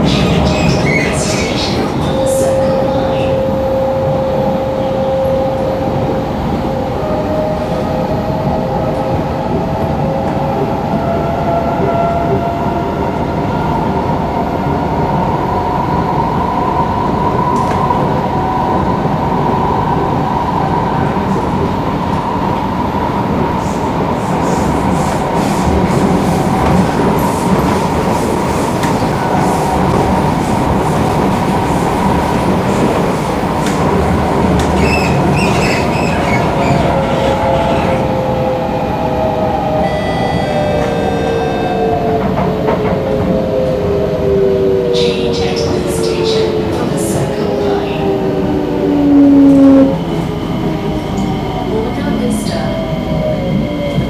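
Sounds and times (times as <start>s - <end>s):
train wheels rumbling on track: 0.0s - 54.0s
wheels squealing: 34.7s - 38.0s.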